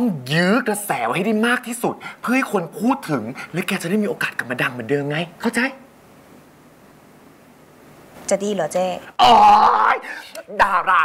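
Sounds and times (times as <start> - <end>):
person exclaiming oh: 9.2 - 11.0.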